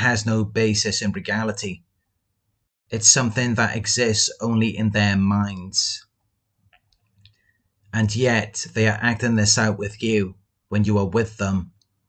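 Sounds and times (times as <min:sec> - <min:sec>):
man talking: 0:00.0 - 0:01.8, 0:02.9 - 0:06.0, 0:08.0 - 0:11.8.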